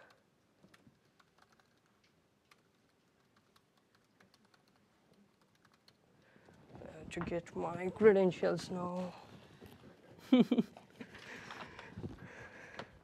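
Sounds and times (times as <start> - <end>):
soft typing on laptop keyboard: 0.0 - 6.8.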